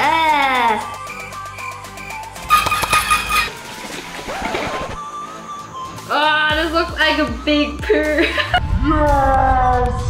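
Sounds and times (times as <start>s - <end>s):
faint background music: 0.0s - 10.0s
container rattling when shaken: 2.5s - 3.6s.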